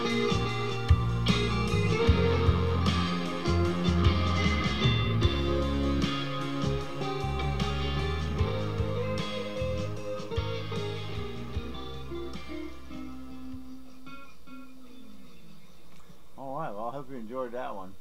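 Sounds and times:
electric guitar solo: 0:00.0 - 0:15.9
blues backing band: 0:00.0 - 0:16.4.

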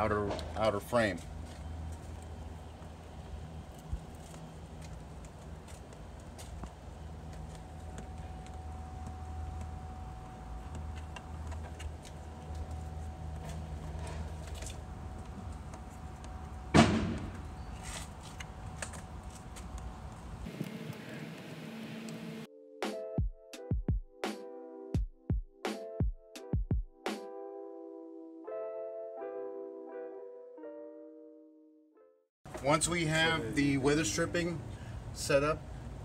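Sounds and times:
low outdoor rumble: 0:00.0 - 0:22.5
background music: 0:22.5 - 0:32.2.

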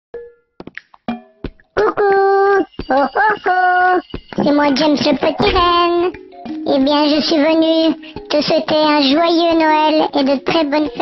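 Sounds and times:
plucked notes: 0:00.2 - 0:11.0
high-pitched cartoon voice: 0:01.8 - 0:11.0.

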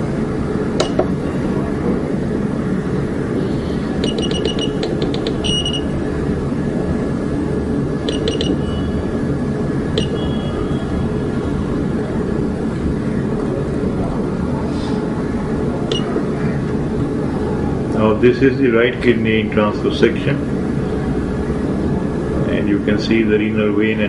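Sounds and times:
steady low hum: 0:00.0 - 0:24.0
short electronic key beeps: 0:04.0 - 0:05.9, 0:08.1 - 0:08.9, 0:10.0 - 0:10.4, 0:15.9 - 0:16.2.

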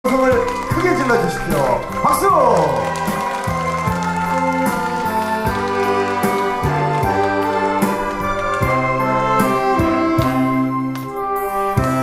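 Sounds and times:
saxophone ensemble playing: 0:00.3 - 0:12.0.

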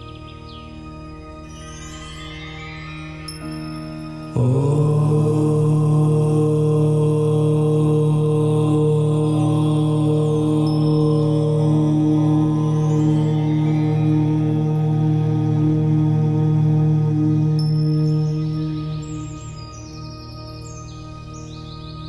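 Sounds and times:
soft music drone: 0:00.0 - 0:22.0
voice chanting: 0:04.3 - 0:19.6.

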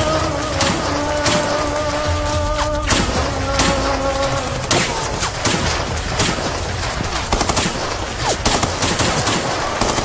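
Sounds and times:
rifles firing rapid shots: 0:00.0 - 0:10.0.

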